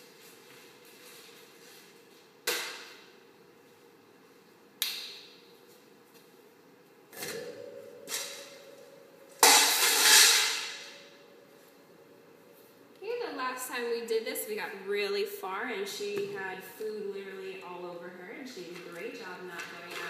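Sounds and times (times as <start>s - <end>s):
knocks echoing in a garage: 7.1s - 11.7s.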